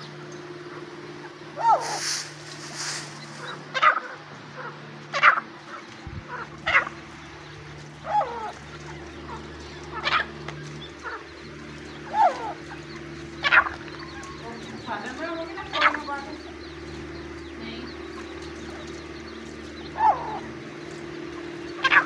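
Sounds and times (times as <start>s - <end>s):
birds calling: 0.0s - 22.0s
steady low hum: 0.0s - 22.0s.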